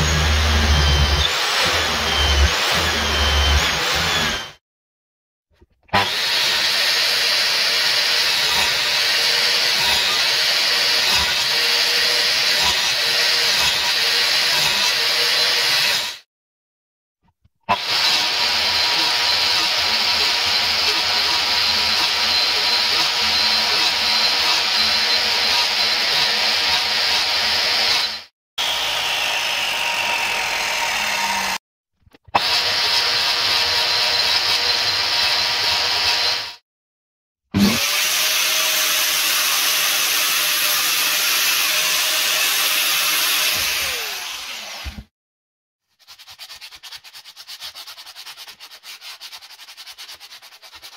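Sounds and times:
mitre saw whining cutting wood: 0:00.0 - 0:04.6, 0:05.9 - 0:16.2, 0:17.7 - 0:31.6, 0:32.2 - 0:36.6, 0:37.6 - 0:45.1.

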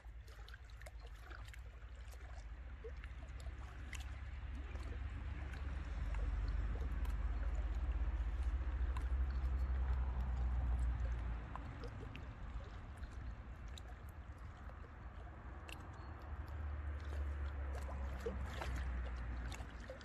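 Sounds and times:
waves lapping against rocks: 0:00.0 - 0:20.0
low rumble: 0:01.9 - 0:20.0
trickling ticks: 0:06.1 - 0:17.7.

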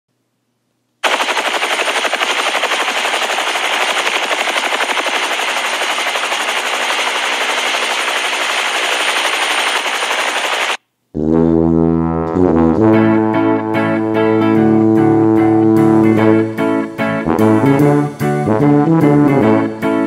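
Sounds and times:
helicopter rotor chopping: 0:01.0 - 0:10.8.

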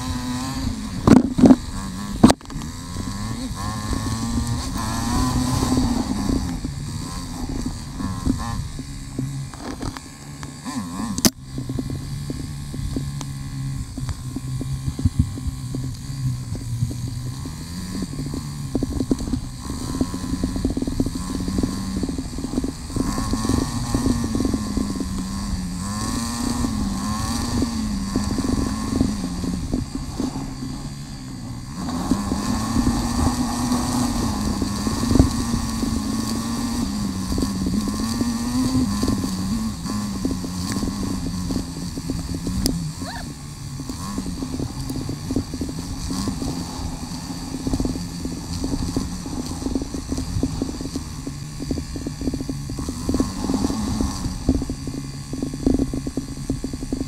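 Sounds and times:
motorcycle engine revving: 0:00.0 - 0:57.0.

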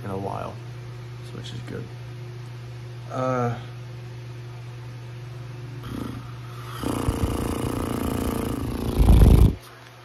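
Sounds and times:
low fan hum: 0:00.0 - 0:10.0
person groaning raspily: 0:05.8 - 0:09.5.

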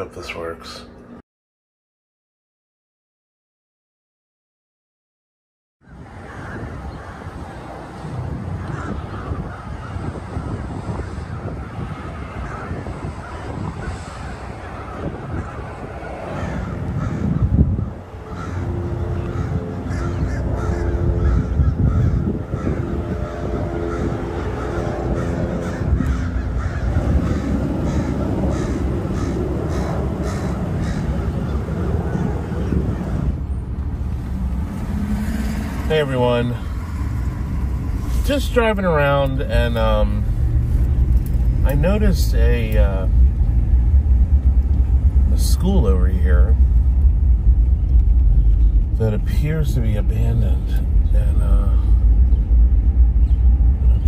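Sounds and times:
crows cawing: 0:05.8 - 0:07.5, 0:08.5 - 0:10.2, 0:11.0 - 0:31.6
low outdoor rumble: 0:05.8 - 0:54.0.

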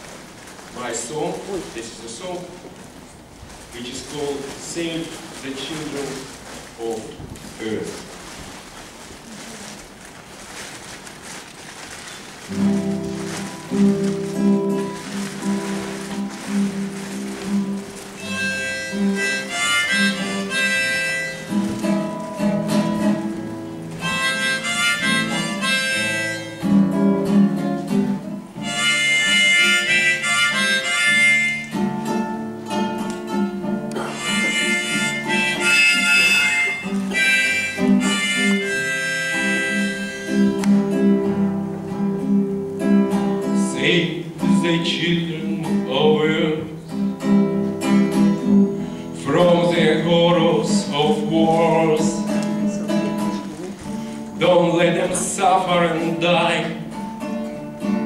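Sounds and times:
nylon-string acoustic guitar: 0:00.0 - 0:58.0
harmonica melody: 0:12.4 - 0:58.0.

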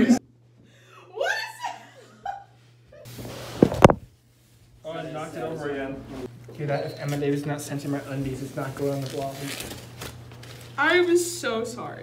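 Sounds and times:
masking tape peeling off: 0:08.9 - 0:10.7.

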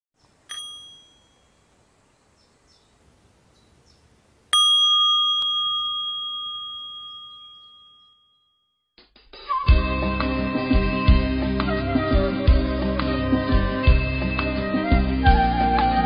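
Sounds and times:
small bell ringing: 0:00.5 - 0:01.6, 0:04.5 - 0:08.9.

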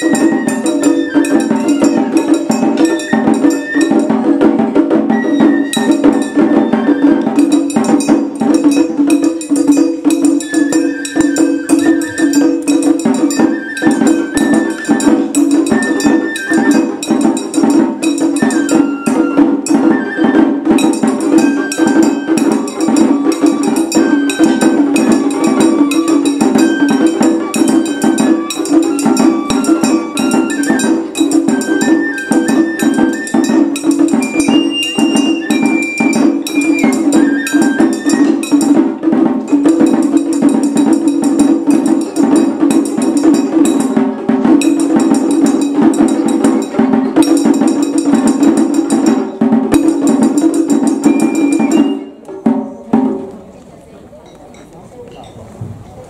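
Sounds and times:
bamboo flute melody: 0:00.0 - 0:52.9
rapid drumming: 0:00.0 - 0:53.5
large drum: 0:00.0 - 0:53.6.

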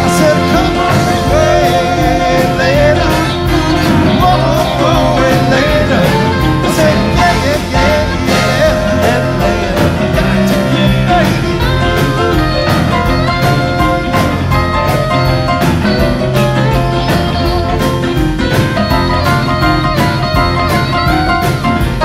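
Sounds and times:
horn section: 0:00.0 - 0:22.0
live rock band playing: 0:00.0 - 0:22.0.

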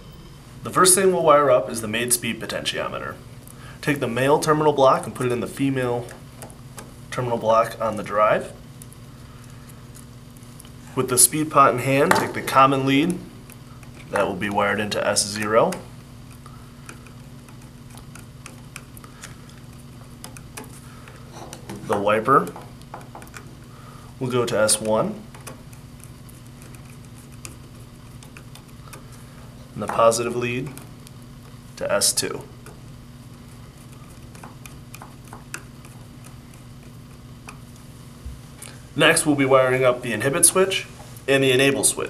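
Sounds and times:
low hum: 0:00.0 - 0:03.7
low steady hum: 0:00.0 - 0:42.0.

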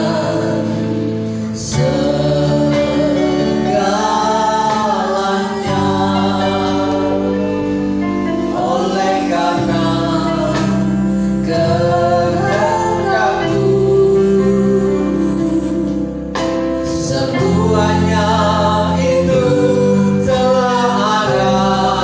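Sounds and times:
worship band playing: 0:00.0 - 0:22.0.

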